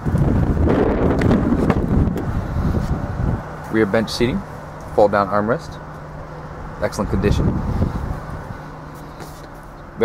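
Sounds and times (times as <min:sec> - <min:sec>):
car cabin hum and hiss: 0:00.0 - 0:10.0.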